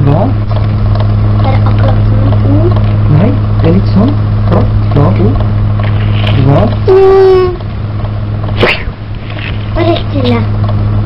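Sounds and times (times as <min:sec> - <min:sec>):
low electrical hum: 0:00.0 - 0:11.0
child's voice: 0:01.4 - 0:02.8, 0:09.7 - 0:10.5.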